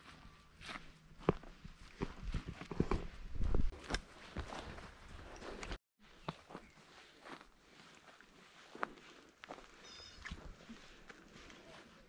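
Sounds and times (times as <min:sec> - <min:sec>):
footsteps crunching on dry grass: 0:00.0 - 0:12.0.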